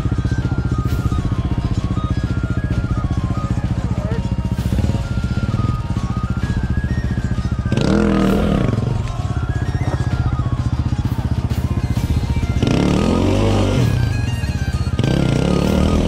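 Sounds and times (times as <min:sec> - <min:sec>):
background music: 0:00.0 - 0:16.0
dirt bike engine idling: 0:00.0 - 0:16.0.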